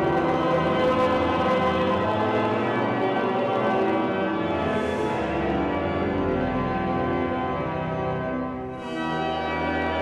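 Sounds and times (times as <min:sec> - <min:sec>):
pipe organ sustained chords: 0:00.0 - 0:10.0.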